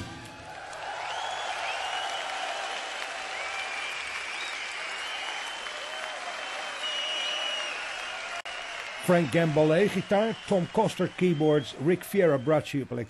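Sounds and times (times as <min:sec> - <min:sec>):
audience applauding: 0:00.3 - 0:12.6
whistling: 0:00.9 - 0:02.6, 0:03.2 - 0:12.7.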